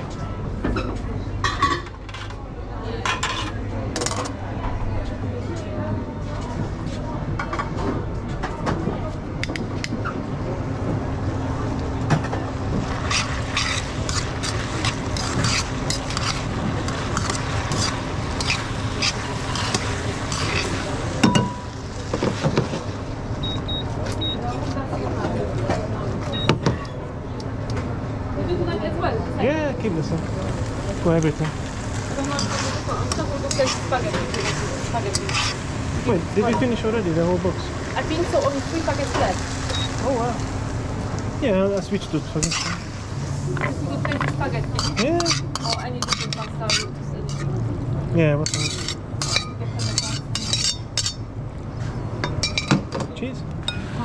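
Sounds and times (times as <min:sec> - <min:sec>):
kitchen hum: 0:00.0 - 0:54.0
voices in a kitchen: 0:00.0 - 0:54.0
metal tongs clinking in frying pan: 0:44.2 - 0:47.5, 0:48.5 - 0:51.2.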